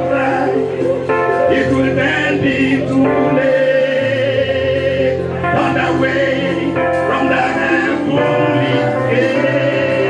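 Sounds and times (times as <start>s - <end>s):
group singing a gospel hymn: 0.0s - 10.0s
instrumental accompaniment: 0.0s - 10.0s.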